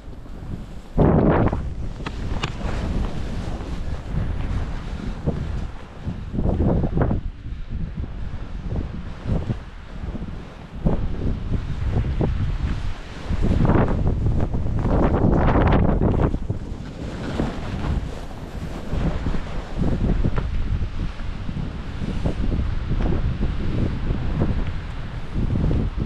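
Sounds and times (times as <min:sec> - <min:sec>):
skis scraping through snow: 0:00.0 - 0:26.0
wind buffeting microphone: 0:00.0 - 0:26.0.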